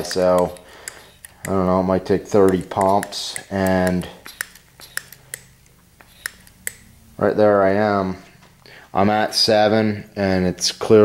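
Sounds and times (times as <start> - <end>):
hand pump sharp clicks: 0.0 - 1.7, 2.3 - 6.9.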